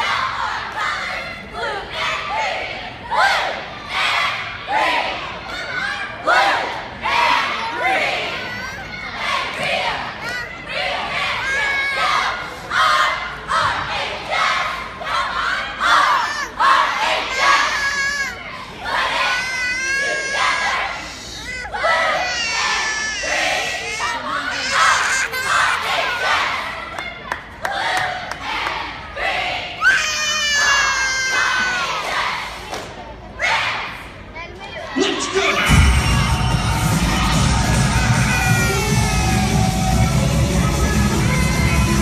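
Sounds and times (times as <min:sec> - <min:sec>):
crowd yelling: 0:00.0 - 0:32.6, 0:34.9 - 0:42.0
cheerleaders chanting: 0:00.0 - 0:42.0
crowd cheering: 0:35.0 - 0:40.8
high-pitched scream: 0:35.6 - 0:39.9.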